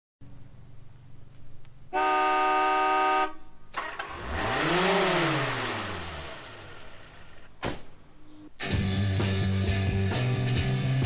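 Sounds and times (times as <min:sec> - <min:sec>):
car horn: 0:01.9 - 0:03.9.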